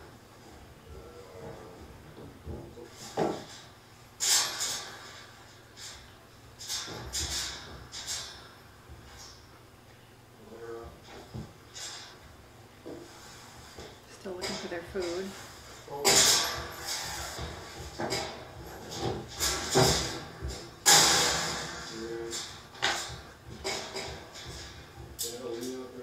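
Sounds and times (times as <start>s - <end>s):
knocks and scrapes: 1.0s - 9.4s, 10.8s - 26.0s.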